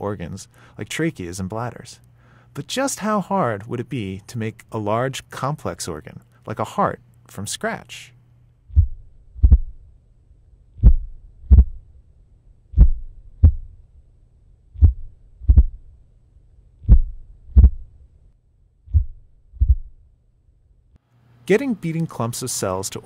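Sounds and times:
faint low hum: 0:00.0 - 0:23.0
slow heartbeat thumps: 0:08.7 - 0:09.9, 0:10.7 - 0:12.0, 0:12.7 - 0:13.9, 0:14.7 - 0:16.0, 0:16.8 - 0:18.0, 0:18.8 - 0:20.1.

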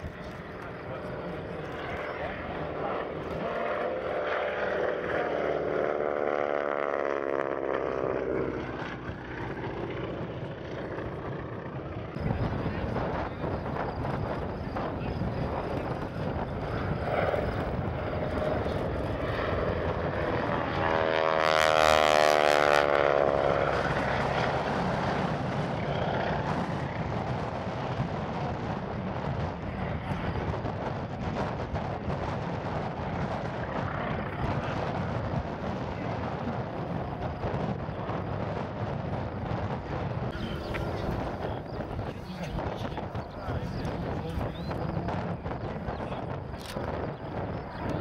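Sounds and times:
propeller plane engine droning: 0:00.0 - 0:48.0.

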